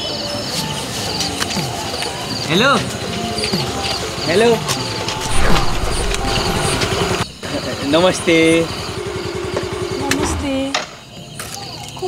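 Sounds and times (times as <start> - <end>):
scooter engine idling: 7.4 - 10.6.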